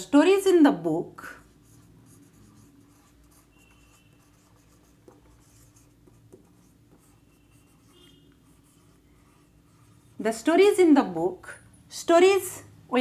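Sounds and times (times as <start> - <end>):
marker writing on whiteboard: 1.2 - 10.9
marker squeaks: 2.4 - 10.1.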